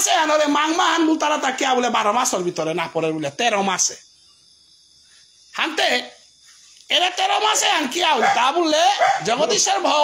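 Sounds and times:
crickets chirring: 0.0 - 10.0
man speaking: 5.6 - 6.2, 6.9 - 10.0.

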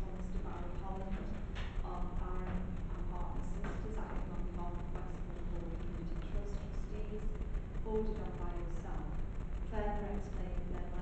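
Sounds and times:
low room rumble: 0.0 - 11.0
person talking: 0.0 - 11.0.

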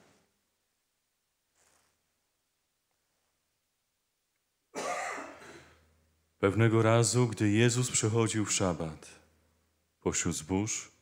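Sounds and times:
man clearing throat: 4.8 - 5.8.

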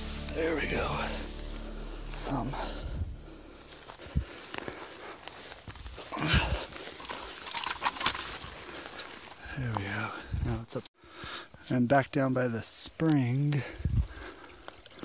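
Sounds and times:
metal dragged through undergrowth: 0.0 - 9.8
grass and brush rustling: 0.0 - 15.0.

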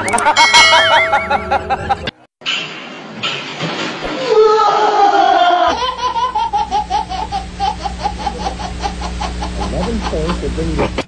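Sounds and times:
baby laughing: 5.0 - 10.5.

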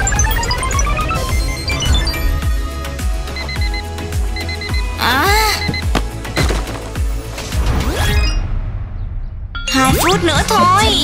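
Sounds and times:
digital alarm clock beeping: 0.0 - 2.4, 3.3 - 6.0.

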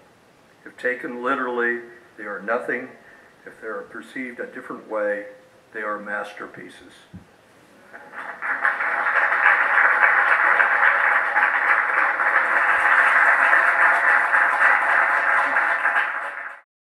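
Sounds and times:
audience applauding: 7.9 - 16.6.

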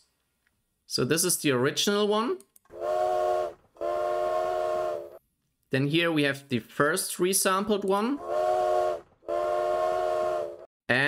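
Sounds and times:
steam train whistle blasts: 2.7 - 5.2, 8.2 - 10.7.

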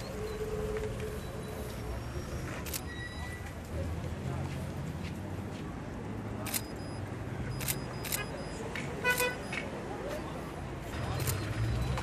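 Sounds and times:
short beep: 2.7 - 3.5, 6.5 - 9.6.

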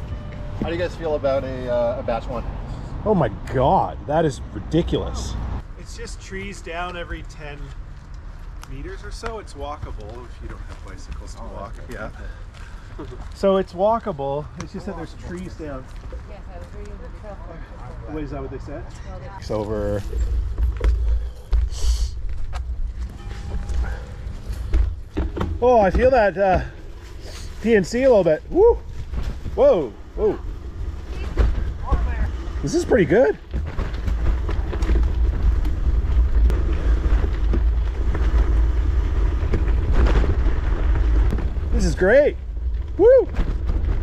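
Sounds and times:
bike tyres on gravel: 5.8 - 17.4, 19.4 - 44.0
bike knocks and clatters: 23.8 - 26.8, 31.1 - 41.7.

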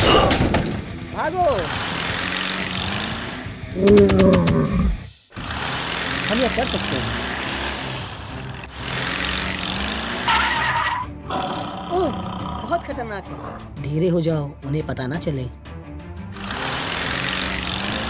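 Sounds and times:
car engine and tyres driving: 0.7 - 4.7, 5.4 - 11.3.

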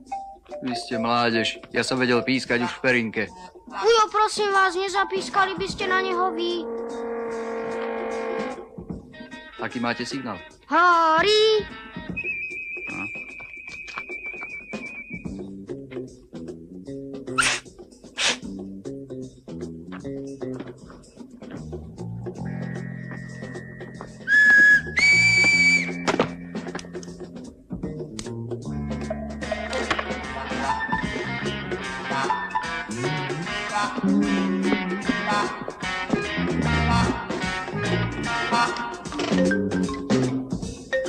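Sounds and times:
background music of plucked notes: 0.0 - 6.6, 15.3 - 41.0
loud high whistle-like tone: 6.6 - 8.7, 12.2 - 15.4, 24.2 - 26.1
man whistling: 12.1 - 15.4, 24.2 - 26.1.

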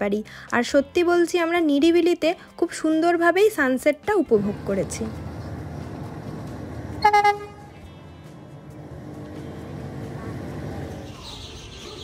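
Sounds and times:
vehicle horn toot: 7.0 - 7.8.

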